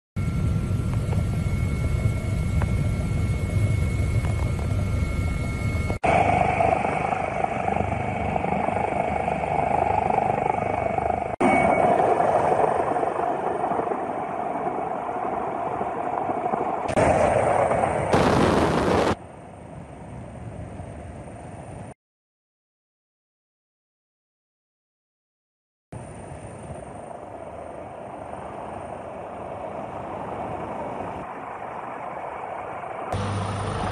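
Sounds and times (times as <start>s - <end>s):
helicopter rumble with whine: 0.2s - 22.0s, 26.0s - 33.9s.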